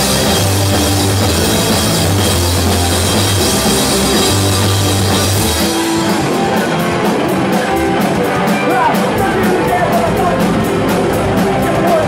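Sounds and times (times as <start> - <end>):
live rock band playing: 0.0 - 12.0
low bass notes: 0.0 - 12.0.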